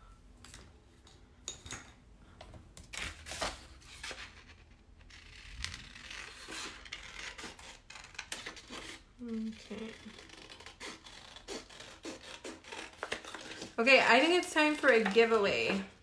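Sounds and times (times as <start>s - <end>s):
person humming: 9.2s - 10.2s.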